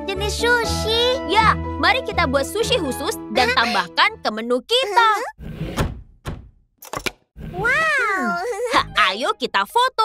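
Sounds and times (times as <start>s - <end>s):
cartoon dull thunk: 5.7s - 6.6s.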